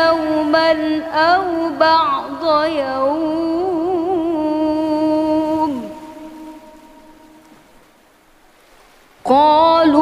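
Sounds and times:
echo of reciting voice: 0:00.0 - 0:07.8, 0:09.2 - 0:10.0
faint hiss: 0:00.0 - 0:10.0.

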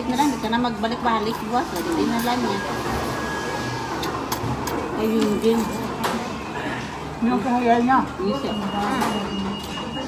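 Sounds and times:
restaurant low hum: 0:00.0 - 0:10.0.

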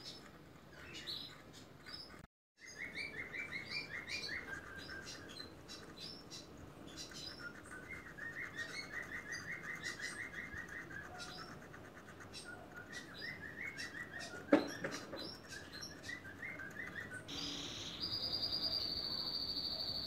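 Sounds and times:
small birds chirping: 0:00.0 - 0:20.0.

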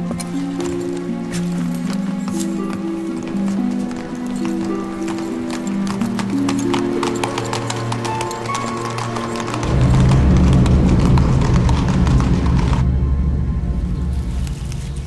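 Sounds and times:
horse hooves on cobbles: 0:00.0 - 0:12.9
orchestral music: 0:00.0 - 0:15.0.

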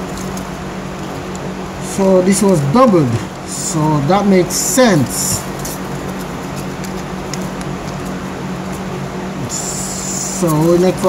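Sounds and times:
low room hum: 0:00.0 - 0:11.0
foil and paper crinkling: 0:04.9 - 0:08.9, 0:09.6 - 0:11.0.

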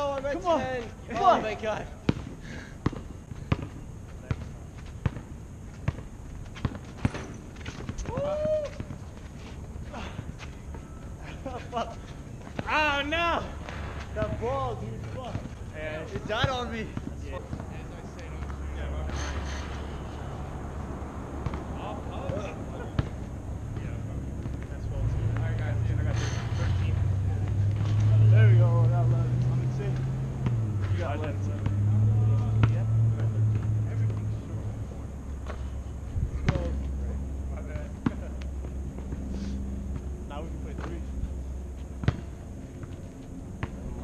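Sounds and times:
players' voices: 0:00.0 - 0:03.4, 0:07.9 - 0:43.0
basketball bouncing on asphalt: 0:02.0 - 0:09.3, 0:13.5 - 0:19.1, 0:19.9 - 0:25.7, 0:30.3 - 0:31.9, 0:36.4 - 0:41.1, 0:41.7 - 0:44.0.

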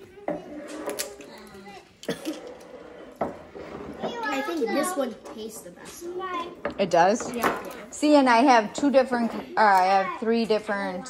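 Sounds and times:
children talking quietly: 0:00.0 - 0:11.0
tableware knocking on wood: 0:03.0 - 0:04.2, 0:06.6 - 0:07.7.

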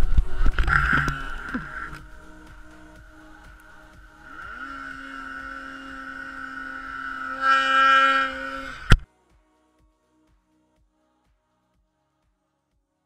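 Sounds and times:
snowmobile engine revving: 0:00.6 - 0:09.0.

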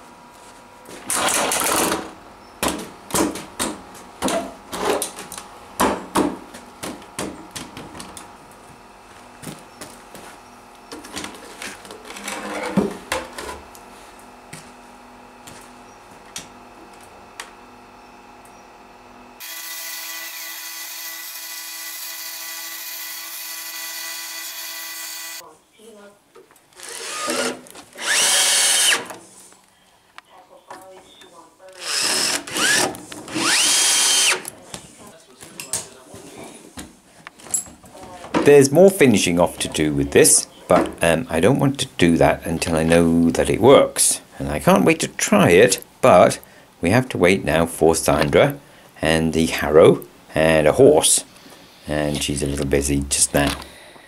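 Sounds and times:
cordless drill driving screws: 0:19.4 - 0:25.4, 0:26.8 - 0:29.2, 0:31.8 - 0:34.5.

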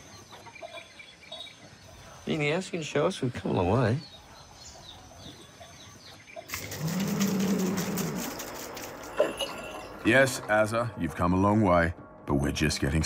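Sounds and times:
water buffalo lowing: 0:06.5 - 0:09.9.

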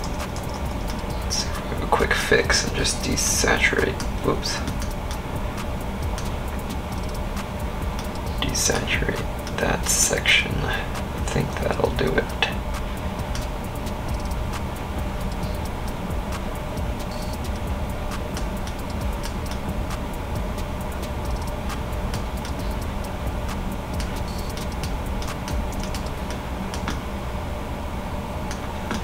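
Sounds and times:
steady low background hum: 0:00.0 - 0:29.0.

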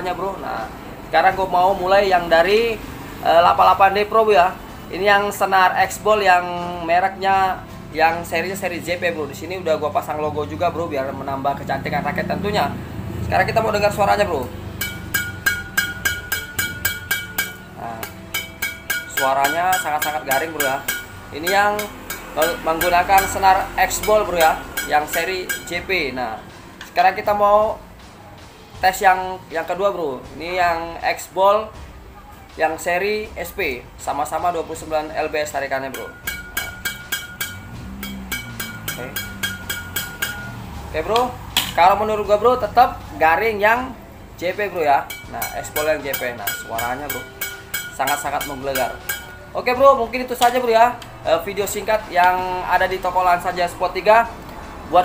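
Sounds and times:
racket strings pinging: 0:13.8 - 0:26.2, 0:35.1 - 0:52.4.

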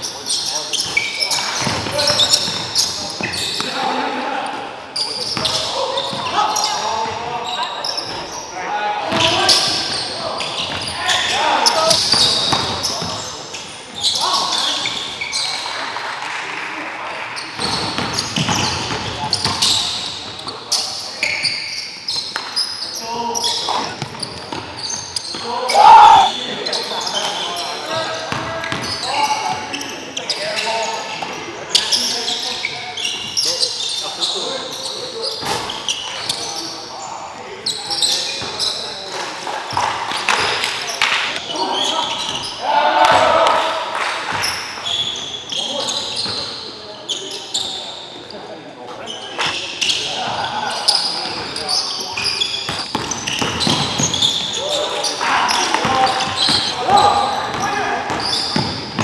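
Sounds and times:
players calling out: 0:25.3 - 0:26.6.

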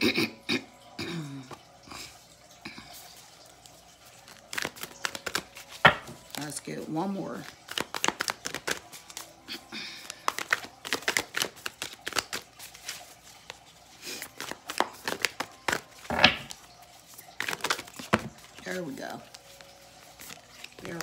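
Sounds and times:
cards being shuffled: 0:04.1 - 0:21.0.

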